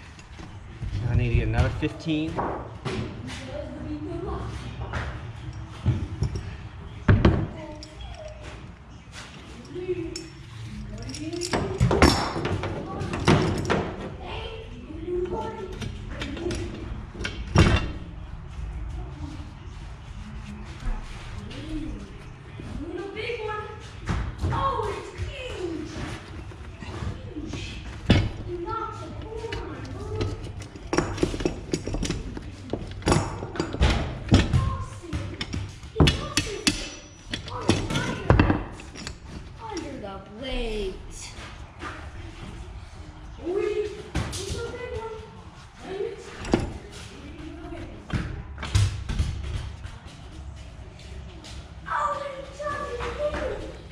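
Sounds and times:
chain and hammer knocking on wood and metal: 0:11.0 - 0:14.1, 0:28.0 - 0:39.8.

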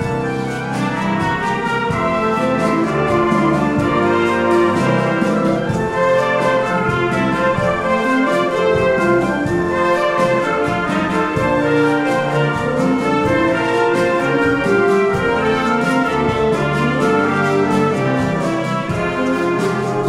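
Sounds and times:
concert band playing: 0:00.0 - 0:20.0
percussion beat: 0:00.0 - 0:20.0.

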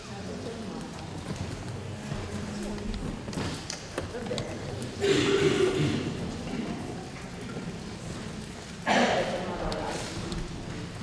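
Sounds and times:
indistinct voices in a hall: 0:00.0 - 0:11.0.

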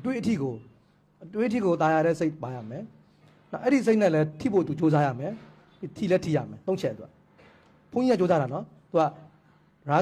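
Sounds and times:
man lecturing: 0:00.0 - 0:07.2, 0:07.9 - 0:10.0.

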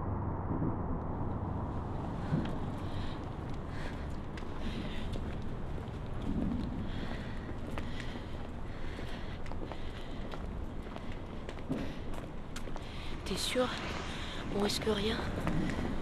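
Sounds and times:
low rumble of city traffic: 0:00.0 - 0:16.0
footsteps on pavement: 0:02.2 - 0:16.0.

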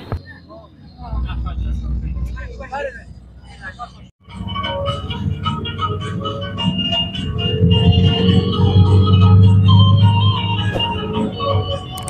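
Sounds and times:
people talking: 0:00.0 - 0:04.1
coach engine rumble: 0:00.0 - 0:12.0
music: 0:04.2 - 0:12.0.

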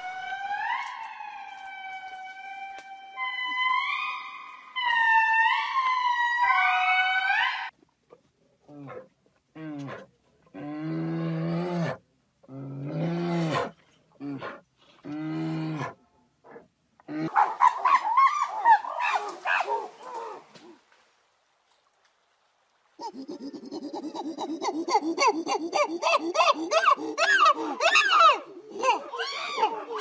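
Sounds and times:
bear low calls: 0:23.0 - 0:30.0
deer stag calling: 0:23.0 - 0:30.0
gorilla harsh calls: 0:23.0 - 0:30.0.

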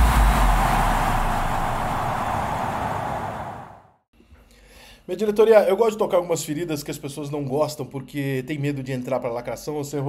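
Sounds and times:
rushing intro sound effect: 0:00.0 - 0:03.9.

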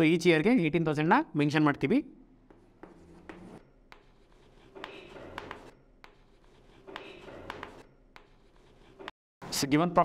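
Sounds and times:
chalk tap: 0:02.5 - 0:08.9
chalk scratching on blackboard: 0:02.6 - 0:09.1.

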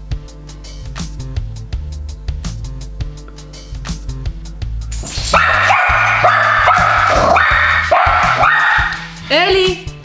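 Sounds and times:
dog barking rapidly: 0:05.3 - 0:09.1.

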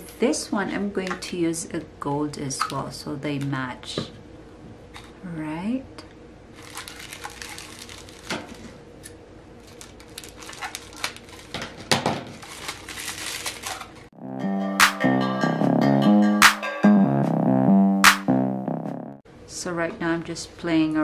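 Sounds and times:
ribbon crinkling: 0:06.6 - 0:08.6, 0:09.6 - 0:11.6, 0:12.3 - 0:14.0
electronic music with beat: 0:14.2 - 0:19.2.

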